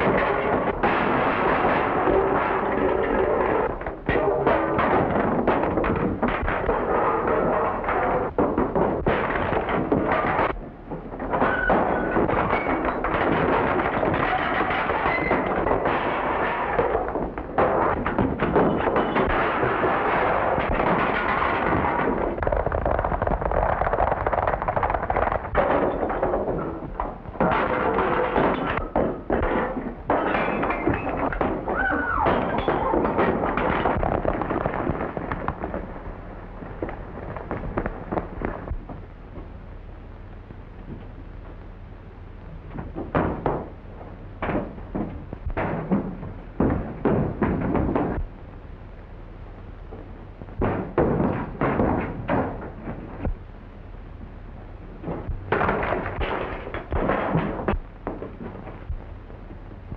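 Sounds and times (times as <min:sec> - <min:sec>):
thuds and crashes of blows: 0:00.0 - 0:36.1, 0:42.7 - 0:43.7, 0:44.4 - 0:48.3, 0:50.6 - 0:53.4, 0:55.0 - 0:59.0.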